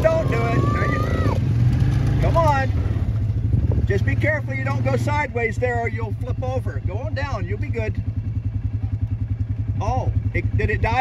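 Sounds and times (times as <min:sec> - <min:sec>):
small engine idling: 0:00.0 - 0:11.0.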